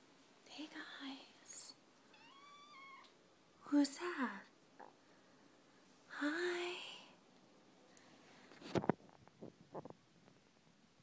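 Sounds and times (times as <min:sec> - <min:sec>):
woman whispering: 0:00.4 - 0:01.8, 0:06.1 - 0:07.2.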